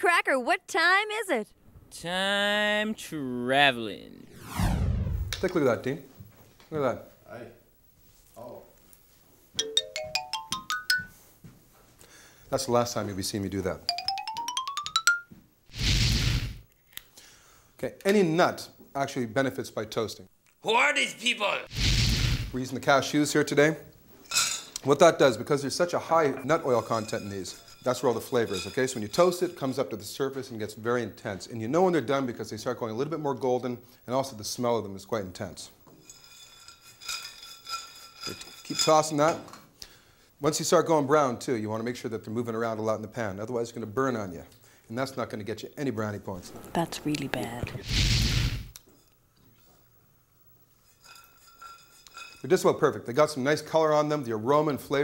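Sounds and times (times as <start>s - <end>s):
faint high ringing: 26.2s - 29.8s, 50.8s - 52.5s
nuts rattling in metal skillet: 26.5s - 29.8s, 36.1s - 39.3s, 50.9s - 52.8s.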